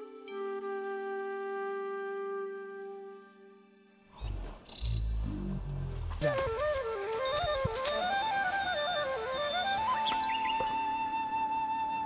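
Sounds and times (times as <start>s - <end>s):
high bird chirps: 4.2s - 5.2s, 9.9s - 10.8s
low microphone rumble: 4.2s - 6.4s.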